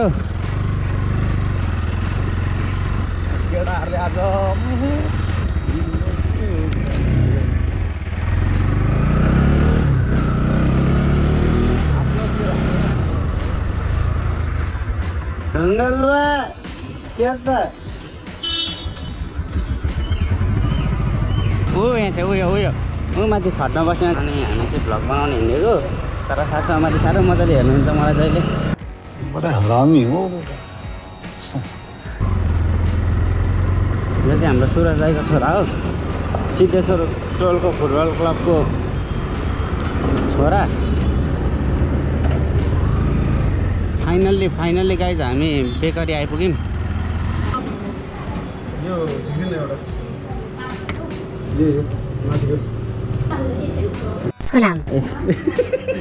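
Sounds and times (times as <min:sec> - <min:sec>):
motorcycle engine running: 0:00.0 - 0:15.7, 0:18.4 - 0:28.8, 0:32.2 - 0:48.8.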